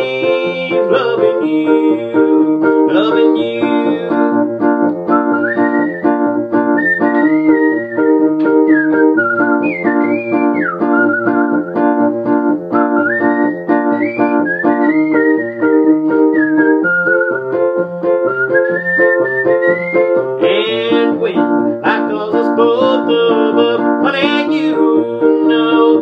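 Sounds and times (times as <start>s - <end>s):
electric piano playing chords: 0.0s - 26.0s
person whistling a melody: 0.0s - 26.0s.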